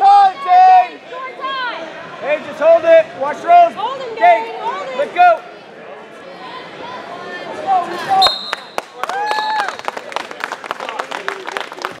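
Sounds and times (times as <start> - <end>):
high whistle blowing: 8.2 - 9.6
scattered clapping: 8.5 - 12.0.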